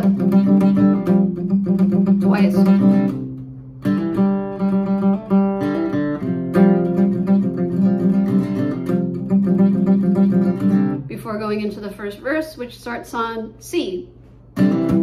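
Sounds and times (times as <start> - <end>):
acoustic guitar riff: 0.0 - 13.1, 14.3 - 15.0.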